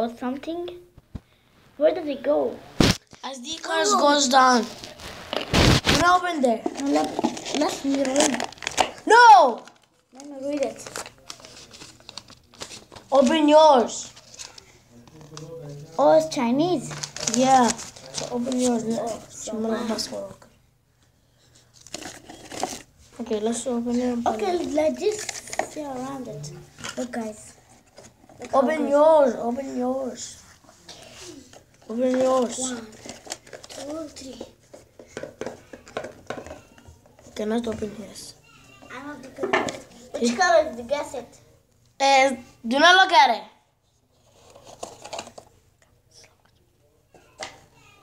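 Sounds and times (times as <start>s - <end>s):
packaging crinkling: 4.6s - 13.2s, 16.8s - 18.8s, 21.7s - 22.9s, 32.3s - 34.0s
cardboard packaging clicks and scrapes: 4.8s - 9.0s.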